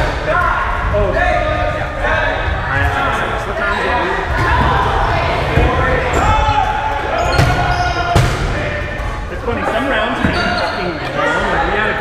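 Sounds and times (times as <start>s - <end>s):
players shouting and chatting: 0.0s - 12.0s.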